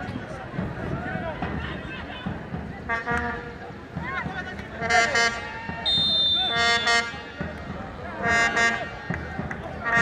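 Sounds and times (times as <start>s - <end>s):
crowd shouting: 0.8s - 10.0s
horn blowing a short note: 5.1s - 7.2s.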